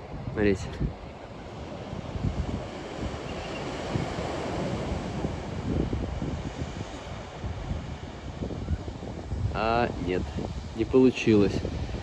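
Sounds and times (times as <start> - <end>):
surf breaking on rocky shore: 0.0 - 12.0
wind buffeting microphone: 0.0 - 12.0.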